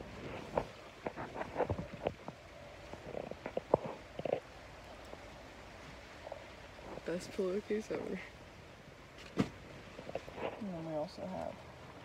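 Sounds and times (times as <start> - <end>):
microphone rubbing against fabric: 0.0 - 2.3.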